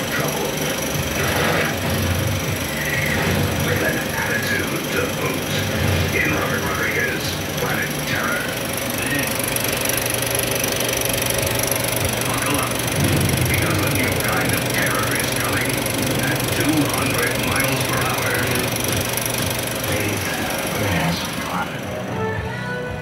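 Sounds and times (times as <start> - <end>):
film projector whirring: 0.0 - 23.0.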